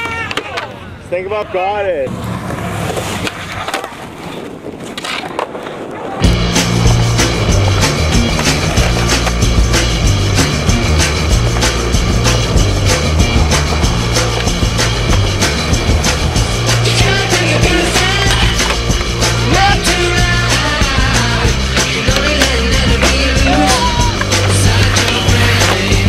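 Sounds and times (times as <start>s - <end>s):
skateboard wheels rolling on concrete: 0.0s - 26.0s
music with heavy bass and drums: 6.2s - 26.0s.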